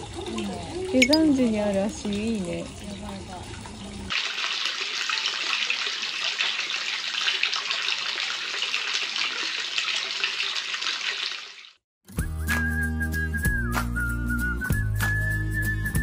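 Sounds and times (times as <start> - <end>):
water splashing into a stone bath: 0.0 - 11.8.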